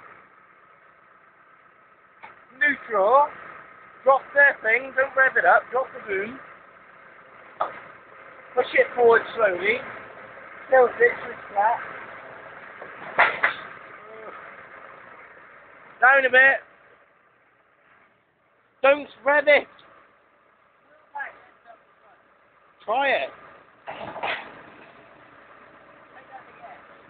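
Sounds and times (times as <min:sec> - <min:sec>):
engine running steadily: 0:00.0 - 0:27.0
sharp knocks: 0:07.6 - 0:07.9, 0:12.8 - 0:13.8, 0:23.9 - 0:24.7.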